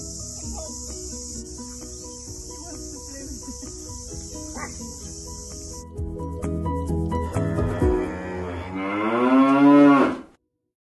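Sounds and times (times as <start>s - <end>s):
cow mooing: 7.6s - 10.3s.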